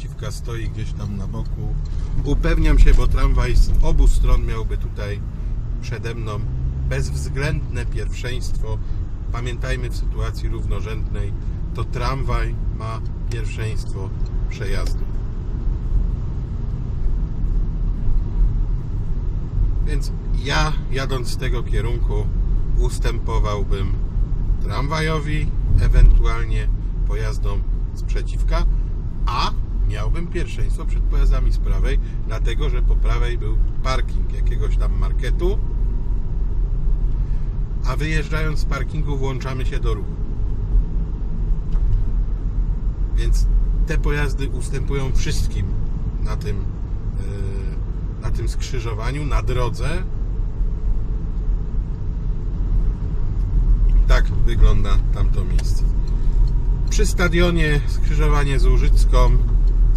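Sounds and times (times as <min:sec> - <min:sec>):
car interior engine and road noise: 0:00.0 - 0:59.9.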